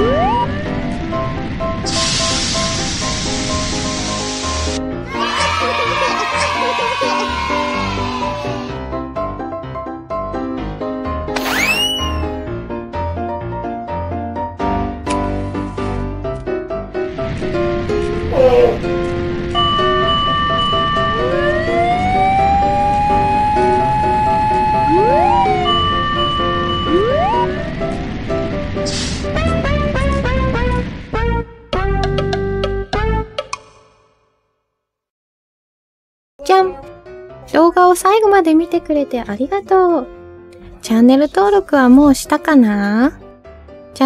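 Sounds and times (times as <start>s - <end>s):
background music: 0.0s - 34.1s, 36.4s - 44.0s
fire hose spraying water: 1.8s - 4.8s, 28.8s - 30.5s
cartoon siren winding up: 11.4s - 12.4s, 20.9s - 27.6s
steady high tone: 11.4s - 12.4s, 19.6s - 27.7s.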